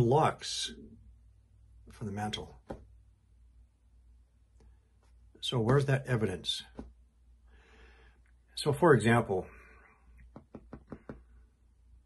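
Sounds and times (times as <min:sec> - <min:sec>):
light muffled taps: 0:06.7 - 0:07.0, 0:10.2 - 0:11.3.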